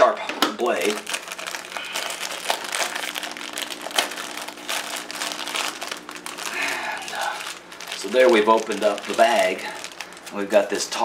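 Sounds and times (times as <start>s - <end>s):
plastic bag crinkling: 0.5s - 11.0s.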